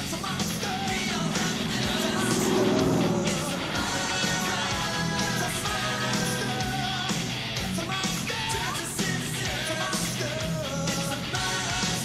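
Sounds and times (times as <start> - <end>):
rock music with electric guitar: 0.0 - 12.0
car engine driving past: 0.3 - 7.6.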